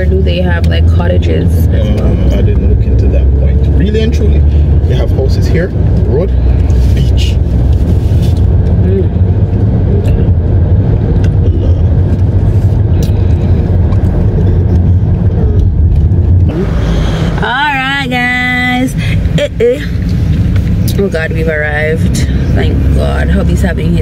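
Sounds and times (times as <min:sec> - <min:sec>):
car cabin road and engine rumble: 0:00.0 - 0:24.0.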